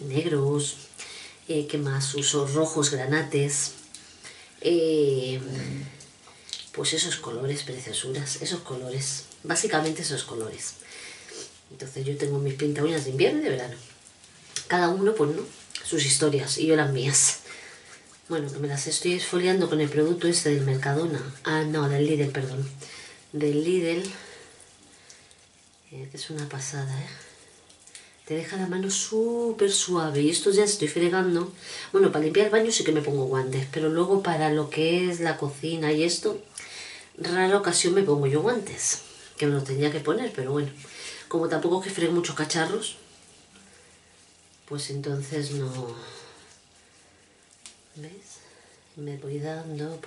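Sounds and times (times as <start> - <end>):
hands rubbing with scrub: 6.9 - 36.5, 37.2 - 50.0.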